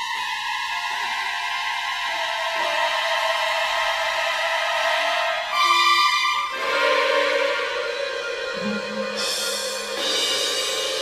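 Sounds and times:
orchestra sustained high chord: 6.6 - 10.5.

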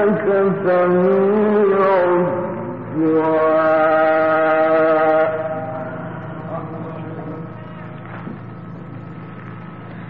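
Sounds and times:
man reciting in long sung note: 0.0 - 7.9.

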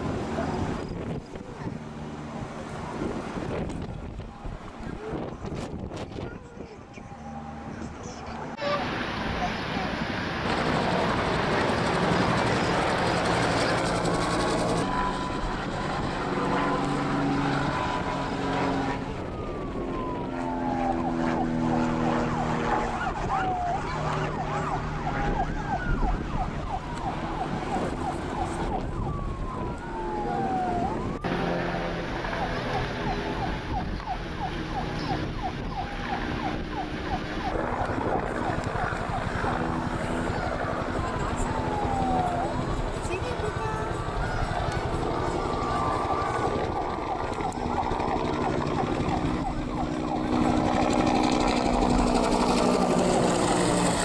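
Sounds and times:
emergency vehicle sirens: 0.0 - 54.0
vehicle engine noise: 0.0 - 54.0.

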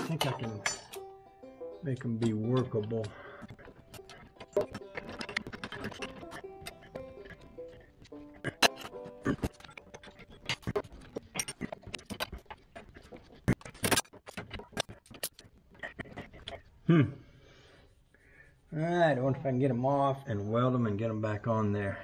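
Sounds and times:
metal hand tools clinking: 0.0 - 1.1, 1.9 - 7.8.

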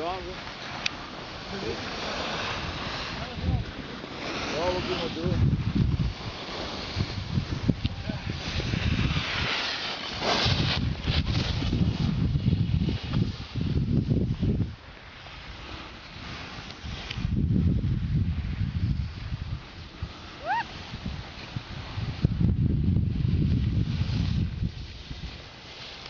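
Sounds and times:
skis sliding over snow: 0.0 - 26.0
wind buffeting microphone: 1.0 - 25.6.

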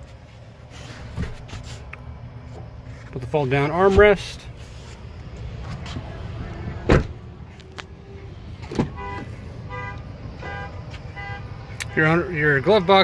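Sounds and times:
truck door thud: 6.8 - 7.2, 8.6 - 9.2.

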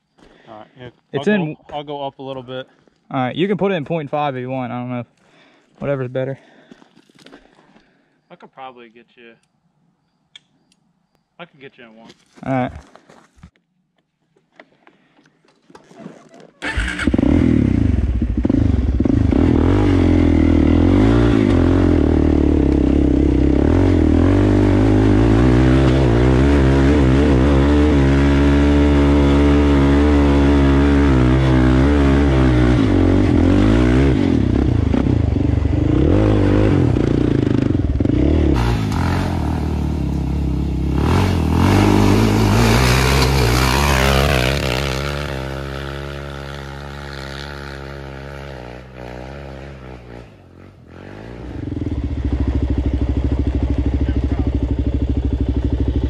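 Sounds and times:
atv engine revving: 16.6 - 56.0.

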